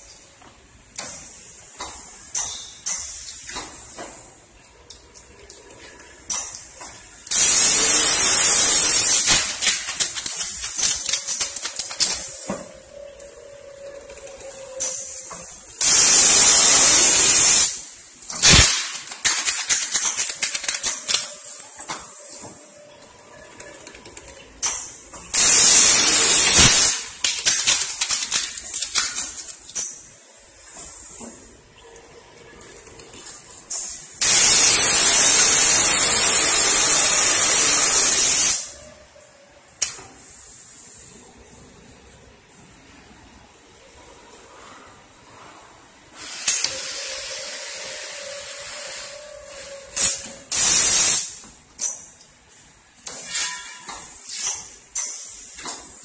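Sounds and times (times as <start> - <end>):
air hiss bursts: 7.3 - 12.8, 14.8 - 22.7, 25.3 - 29.9, 33.7 - 38.7, 46.1 - 51.4.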